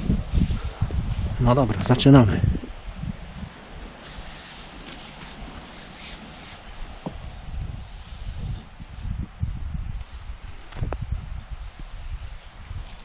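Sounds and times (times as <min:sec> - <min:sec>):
wind blowing across microphone: 0:00.0 - 0:13.0.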